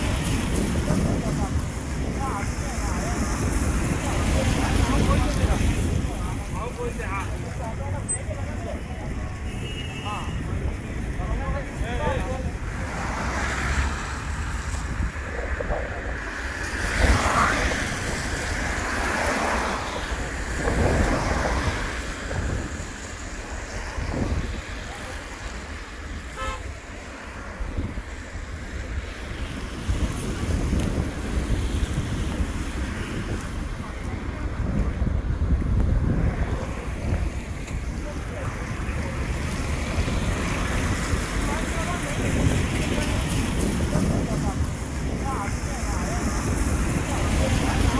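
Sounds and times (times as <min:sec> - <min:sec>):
road traffic: 0:00.0 - 0:47.9
wind buffeting microphone: 0:00.0 - 0:47.9.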